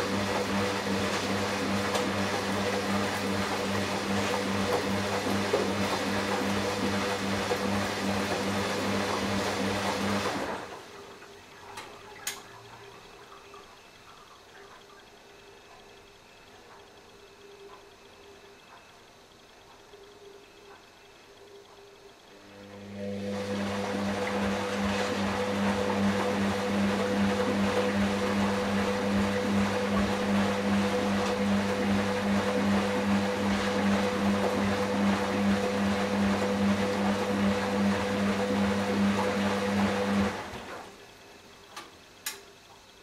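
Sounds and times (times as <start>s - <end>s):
washing machine moving water: 0.0s - 43.0s.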